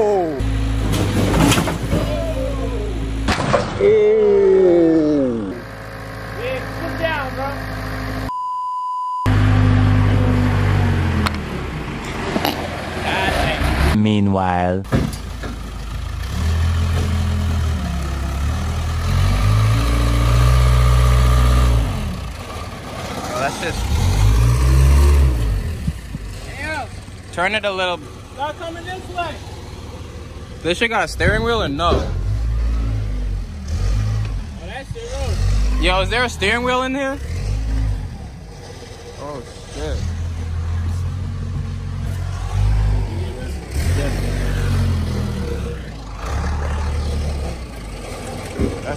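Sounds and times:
heavy machine engine revving: 0.0s - 8.3s, 9.3s - 14.0s, 15.2s - 48.9s.

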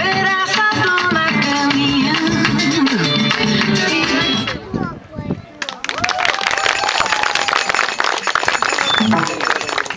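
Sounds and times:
audience applauding: 5.7s - 9.9s.

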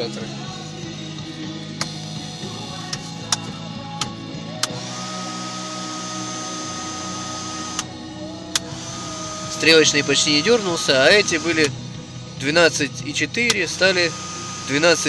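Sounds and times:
music from car stereo: 0.0s - 15.0s
cabin heater humming: 1.5s - 12.4s, 13.0s - 15.0s.

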